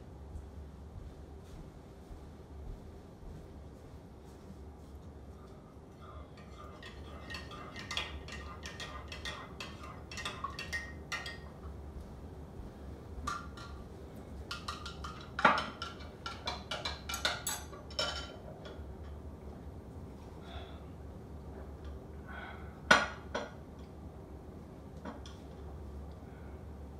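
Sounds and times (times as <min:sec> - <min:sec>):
spoon clinking in ceramic mug: 0:06.4 - 0:11.4.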